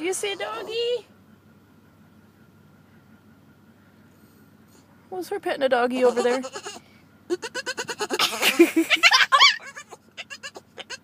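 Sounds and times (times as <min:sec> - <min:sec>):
dog whining and yipping: 0:06.0 - 0:11.0.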